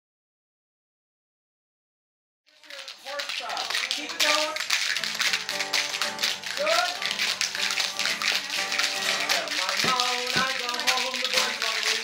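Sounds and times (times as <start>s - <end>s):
spoons clacking: 2.5s - 12.0s
acoustic guitar strumming: 5.0s - 11.9s.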